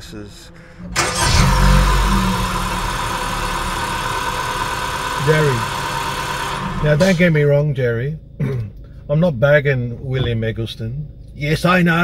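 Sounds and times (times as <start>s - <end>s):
high whine: 0.0s - 7.7s
car engine idling: 0.0s - 11.7s.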